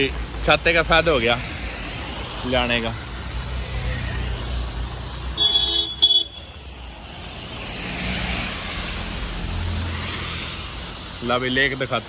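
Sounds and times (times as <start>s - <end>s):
traffic on wet road: 0.0s - 12.0s
vehicle passing: 0.0s - 12.0s
vehicle horn: 5.4s - 6.4s.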